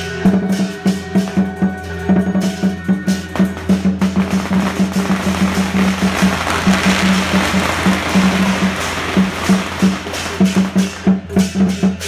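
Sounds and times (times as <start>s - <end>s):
procession percussion: 0.2s - 12.0s
firecrackers crackling: 3.4s - 12.0s.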